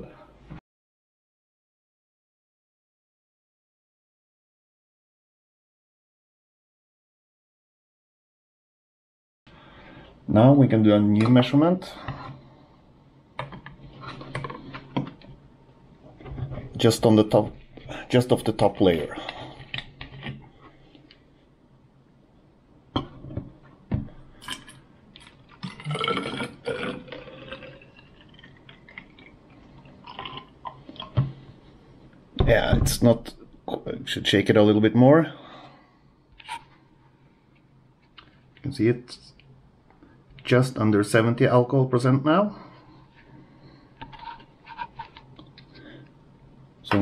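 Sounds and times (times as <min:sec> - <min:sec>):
liquid gurgling into glass: 0:25.6 - 0:29.3.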